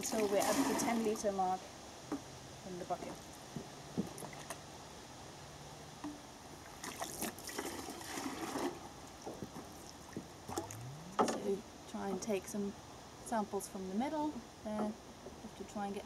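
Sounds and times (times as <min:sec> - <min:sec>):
water pouring into bucket: 0:00.0 - 0:01.0, 0:06.8 - 0:08.8
water drips: 0:09.1 - 0:11.4.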